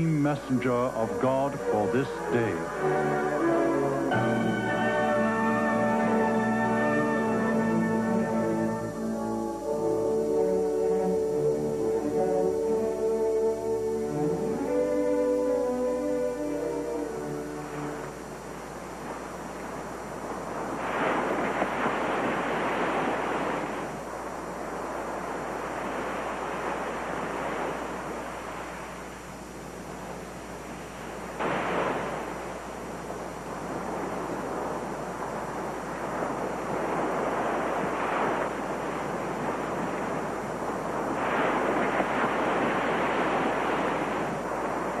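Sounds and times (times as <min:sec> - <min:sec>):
wave breaking sharply: 0:00.0 - 0:08.4
sea surf washing onto beach: 0:00.0 - 0:45.0.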